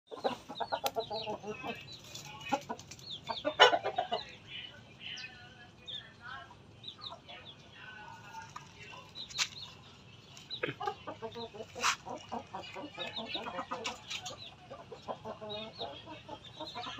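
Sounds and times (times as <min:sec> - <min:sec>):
rooster clucking: 0:00.1 - 0:04.4, 0:10.5 - 0:16.9.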